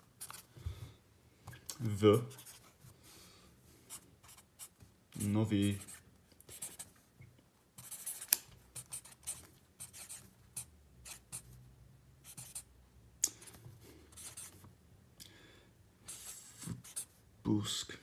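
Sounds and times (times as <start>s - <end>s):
pen writing on paper: 5.7s - 6.9s, 7.8s - 11.4s, 12.3s - 12.6s, 14.2s - 14.6s, 16.1s - 17.1s.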